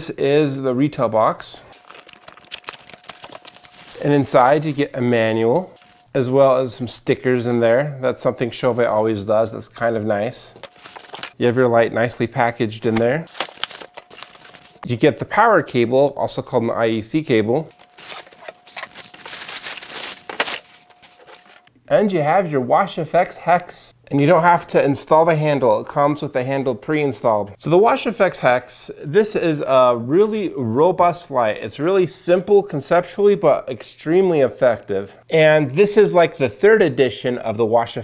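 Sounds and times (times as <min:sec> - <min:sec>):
plastic bag crinkling: 0:01.7 - 0:05.1, 0:05.8 - 0:06.2, 0:10.6 - 0:11.4, 0:12.9 - 0:14.9, 0:17.7 - 0:21.7.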